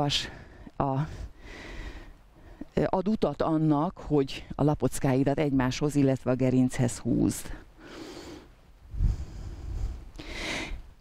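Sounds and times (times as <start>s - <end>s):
faint breathing: 0.2s - 2.7s, 7.5s - 11.0s
wind buffeting microphone: 8.9s - 10.1s.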